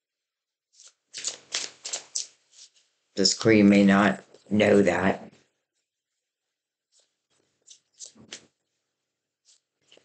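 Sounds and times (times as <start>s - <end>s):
cards being shuffled: 0.8s - 2.9s, 6.9s - 8.6s, 9.4s - 10.0s.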